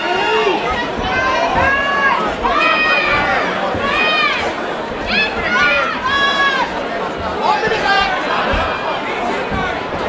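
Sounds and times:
crowd hubbub: 0.0s - 10.0s
crowd shouting: 0.0s - 10.0s.

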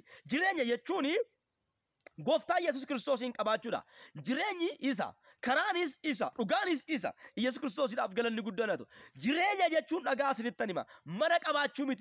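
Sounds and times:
man speaking: 0.0s - 1.3s, 2.1s - 12.0s
cricket chirping: 0.0s - 12.0s.

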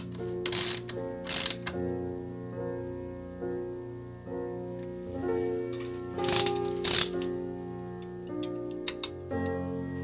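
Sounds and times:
soft piano music: 0.0s - 10.0s.

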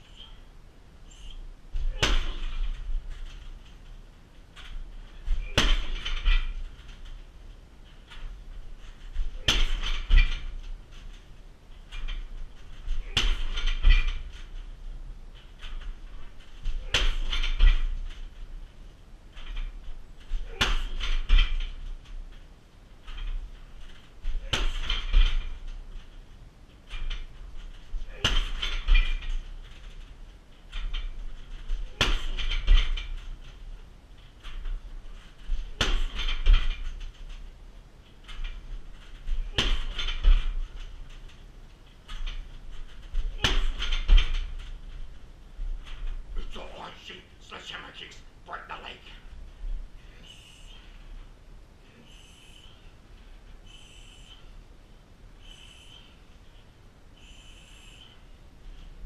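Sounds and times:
kicks hitting heavy bag: 1.8s - 3.1s, 5.3s - 6.6s, 9.2s - 10.6s, 12.9s - 14.3s, 16.7s - 18.0s, 20.4s - 21.7s, 24.2s - 25.6s, 28.0s - 29.3s, 31.7s - 33.2s, 35.5s - 36.9s, 39.3s - 40.7s, 43.2s - 44.6s.

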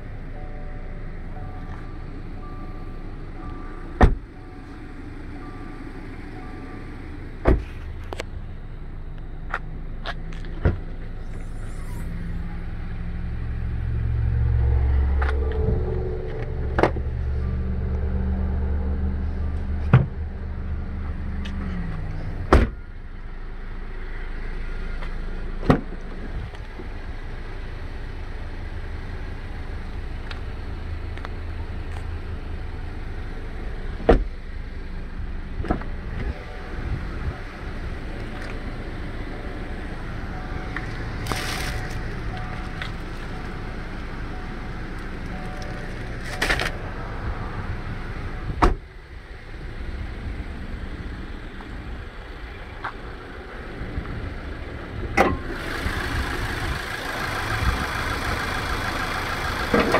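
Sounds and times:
traffic rumble: 0.0s - 59.9s
vehicle engine running: 0.0s - 59.9s.

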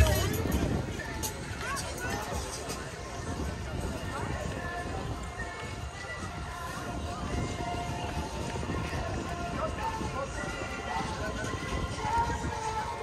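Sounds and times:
footsteps on pavement: 0.0s - 13.0s
music playing: 0.0s - 13.0s
people talking: 0.0s - 13.0s.

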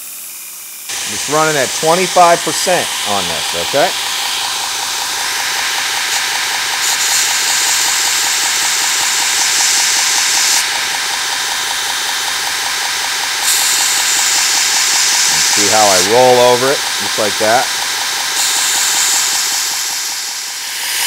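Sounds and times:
belt grinder running: 0.0s - 21.0s
steel hissing on grinder belt: 0.0s - 21.0s.

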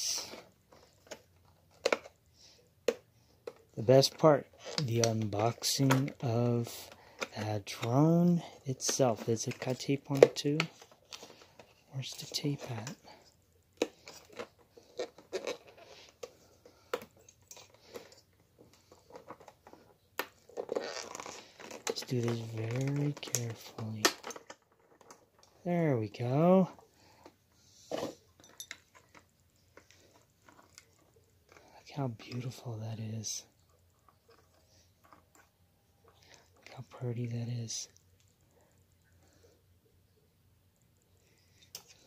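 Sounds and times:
cardboard box packaging crinkling: 18.7s - 25.5s.

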